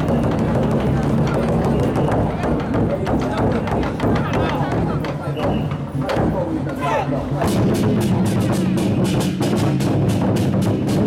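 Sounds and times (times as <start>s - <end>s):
large drums beaten hard: 0.0s - 11.0s.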